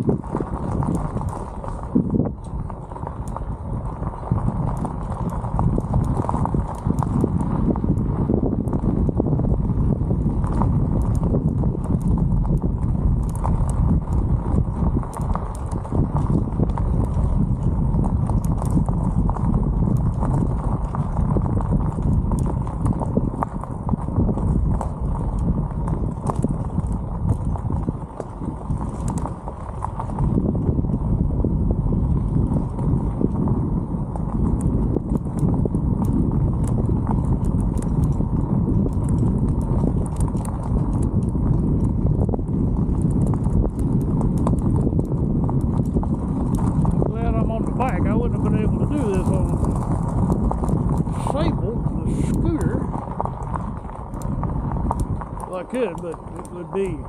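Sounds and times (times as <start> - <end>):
bike tyres crunching on gravel: 0.0 - 57.0.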